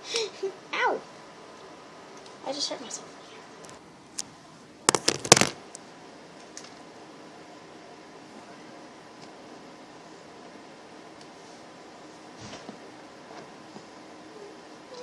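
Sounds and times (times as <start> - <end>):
faint hum: 0.0 - 15.0.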